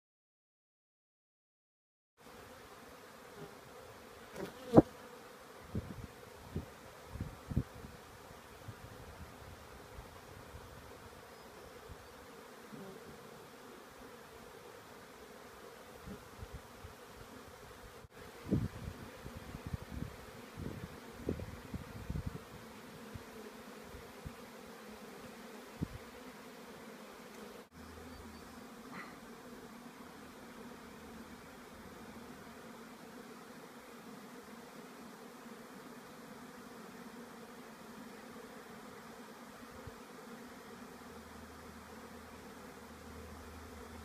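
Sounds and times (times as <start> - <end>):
bees buzzing: 2.2 - 44.0.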